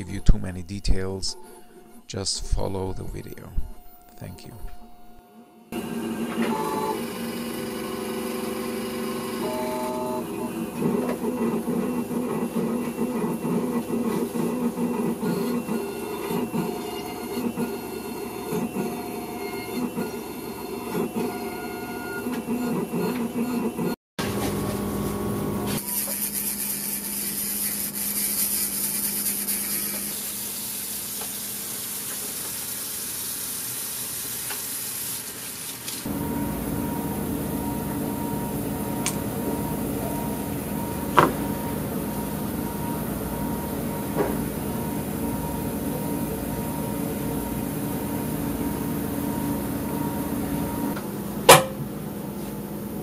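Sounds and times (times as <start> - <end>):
milling machine grinding: 5.8 - 30.6
dental handpiece whine: 25.8 - 30.6.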